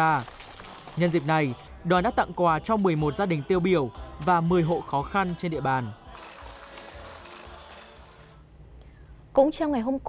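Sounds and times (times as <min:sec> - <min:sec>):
soft background music: 0:00.0 - 0:08.5.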